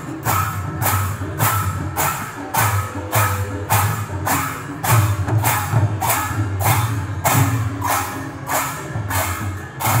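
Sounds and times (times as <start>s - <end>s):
hand cymbals clashing: 0.0s - 10.0s
hand drums: 0.0s - 10.0s.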